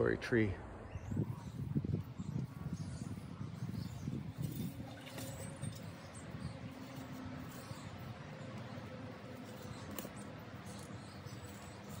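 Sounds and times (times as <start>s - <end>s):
shovel digging and scraping soil: 4.0s - 12.0s.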